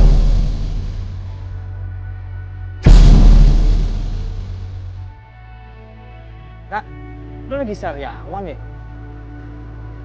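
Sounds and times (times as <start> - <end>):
horror scare sting boom: 0.0 - 1.4, 2.8 - 5.0
low droning music: 0.0 - 10.0.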